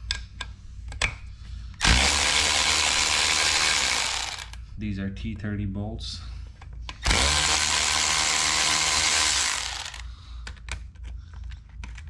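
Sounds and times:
cordless power tool spinning: 1.8s - 4.6s, 7.0s - 10.0s.

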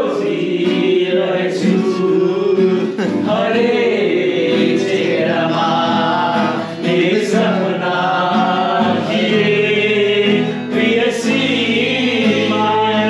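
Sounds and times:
group singing over music: 0.0s - 13.0s.

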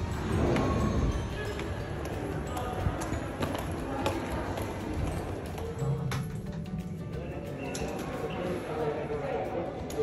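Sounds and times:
footsteps on tiled floor: 0.0s - 6.6s
people talking: 0.6s - 6.3s, 7.1s - 10.0s.

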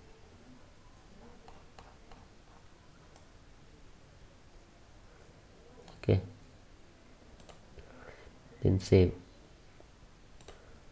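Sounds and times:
faint mouse clicks: 7.4s - 7.9s, 10.4s - 10.7s.

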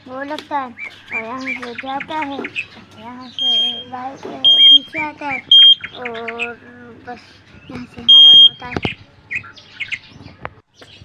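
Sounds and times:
bird chirps: 0.1s - 11.0s.

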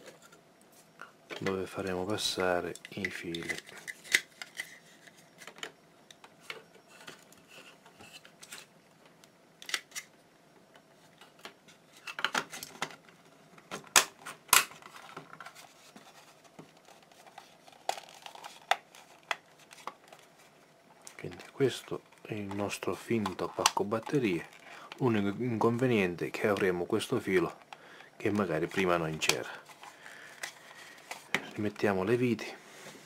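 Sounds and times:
hard plastic parts clicking: 2.7s - 4.7s.

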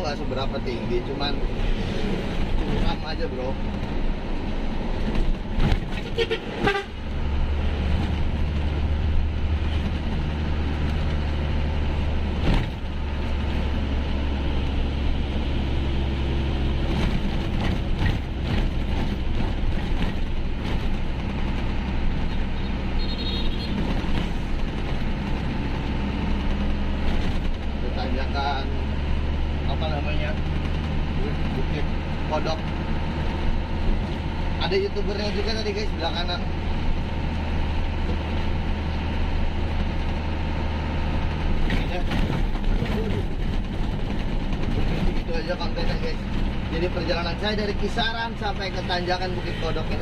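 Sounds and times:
truck engine drone: 0.0s - 50.0s
truck horn: 6.0s - 7.0s, 22.6s - 23.9s.

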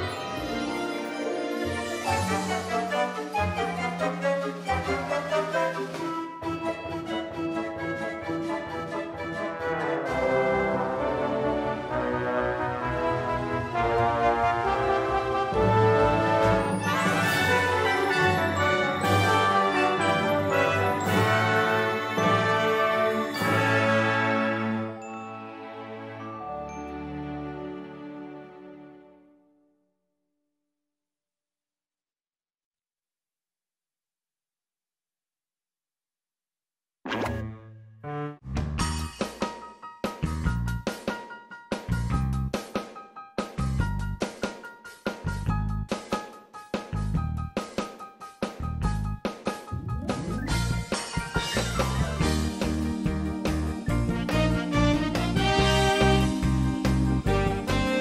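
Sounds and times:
orchestral music with brass: 0.0s - 29.4s, 49.9s - 58.0s
cartoon plop sound effect: 37.1s - 37.8s
upbeat song with drums: 38.5s - 58.0s.

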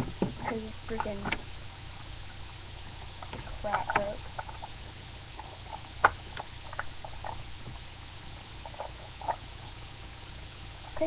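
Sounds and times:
microphone hiss: 0.0s - 11.0s.

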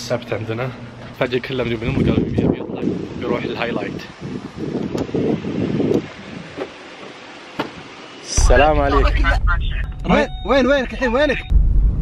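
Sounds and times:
wind buffeting microphone: 1.8s - 6.8s.

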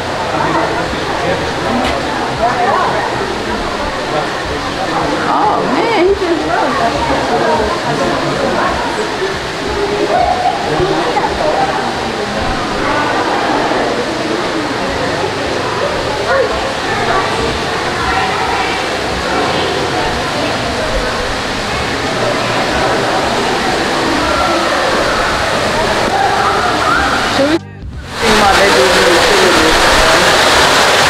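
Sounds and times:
faint chatter of people: 0.0s - 30.6s
waterfall rushing: 0.0s - 31.0s.

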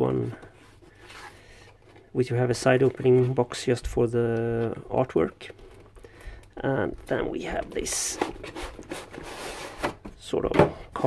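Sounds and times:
cardboard rubbing and scraping: 2.4s - 3.8s, 7.0s - 10.1s.

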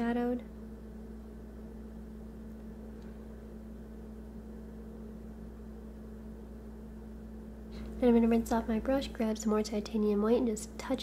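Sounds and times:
low electrical hum: 0.0s - 11.0s.

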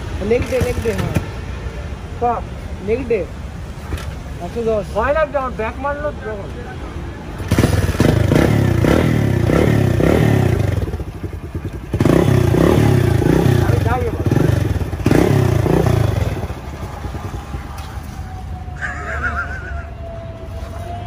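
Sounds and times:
motorcycle engine revving: 0.0s - 1.3s, 7.4s - 18.4s.

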